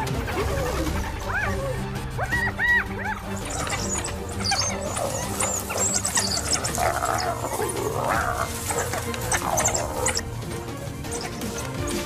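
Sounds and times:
background music with low bass: 0.0 - 12.0
hyenas moaning and whooping: 0.0 - 12.0
high chirping twitters: 3.3 - 10.3.

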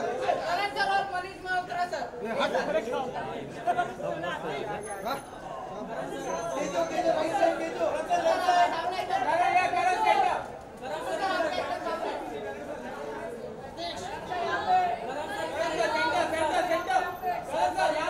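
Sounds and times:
overlapping chatter of voices: 0.0 - 18.0.

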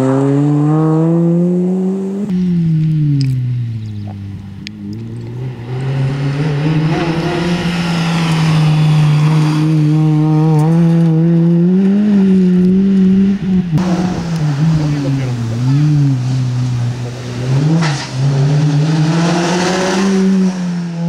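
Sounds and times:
rally car engine at high revs: 0.0 - 21.0.

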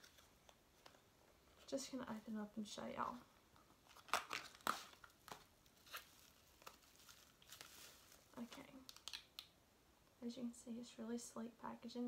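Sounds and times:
packaging rustling and crinkling: 3.8 - 9.4.

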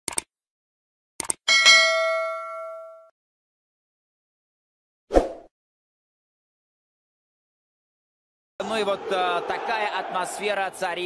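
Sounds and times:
short clicks: 1.2 - 1.4
bell-like ding: 1.5 - 3.1.

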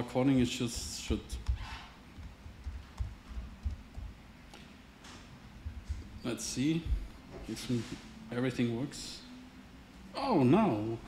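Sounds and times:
laptop keyboard typing: 0.7 - 4.2.

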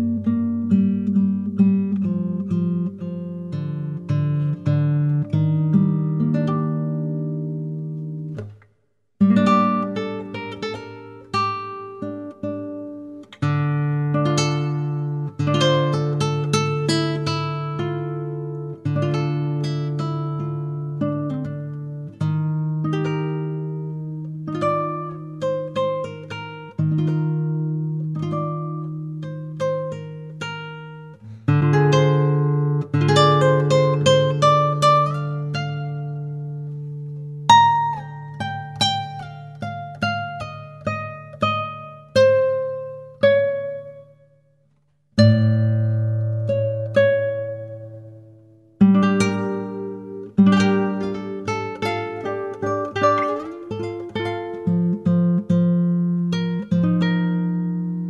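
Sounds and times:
classical guitar fingerpicked: 0.0 - 58.0.

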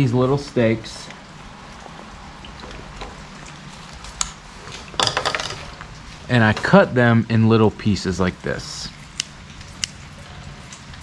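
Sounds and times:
low background hiss: 0.0 - 9.9.

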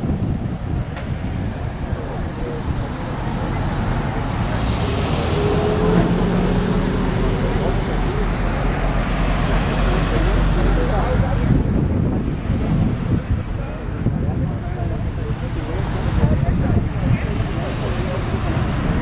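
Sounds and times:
road traffic: 0.0 - 19.0
wind buffeting microphone: 0.0 - 19.0.

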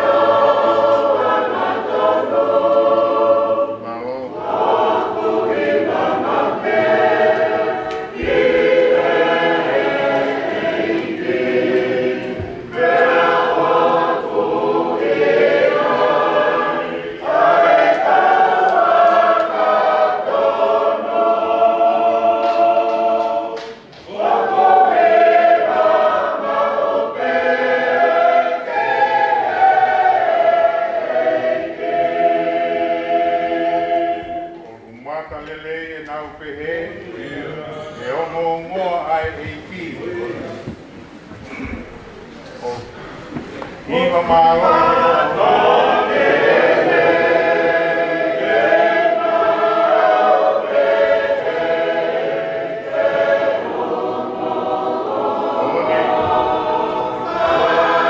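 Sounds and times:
group singing a hymn: 0.0 - 42.0, 42.6 - 58.0.

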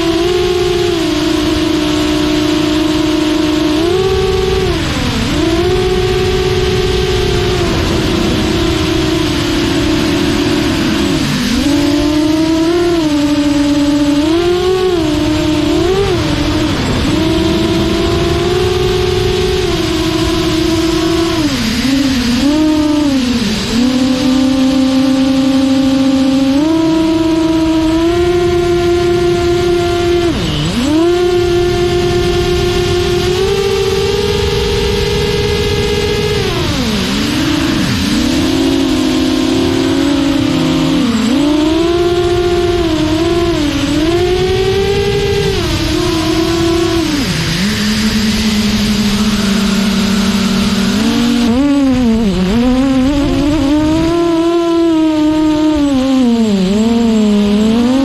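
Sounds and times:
quadcopter propellers whining: 0.0 - 58.0.

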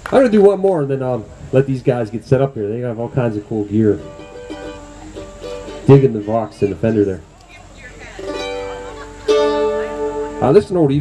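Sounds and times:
strummed acoustic string chords: 1.9 - 11.0.

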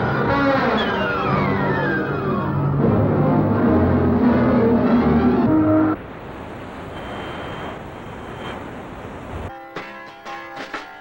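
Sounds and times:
music: 0.0 - 6.0, 9.5 - 11.0.

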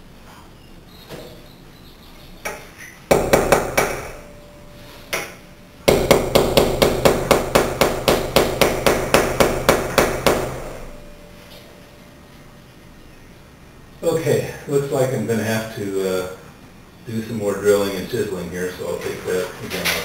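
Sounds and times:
hammer striking chisel: 2.5 - 4.2, 5.1 - 10.8.

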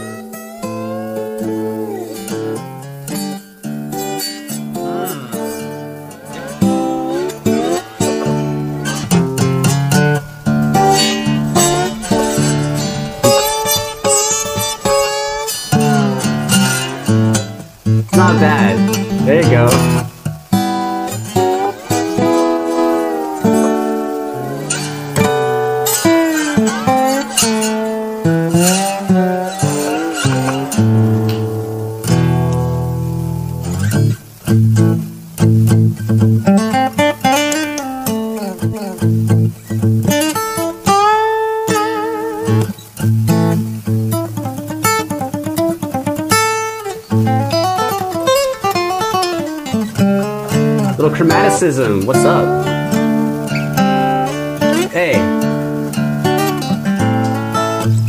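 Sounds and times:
fingerstyle acoustic blues guitar: 0.0 - 58.0.

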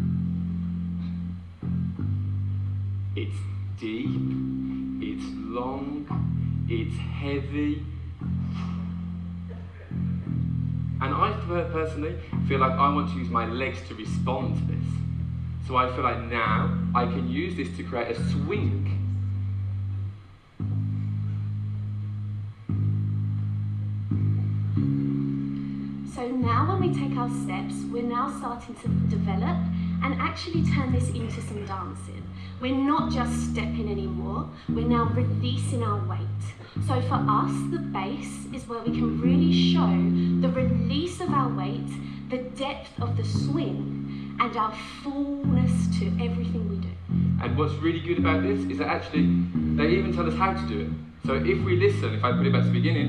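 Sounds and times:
deep bass line: 0.0 - 53.0.

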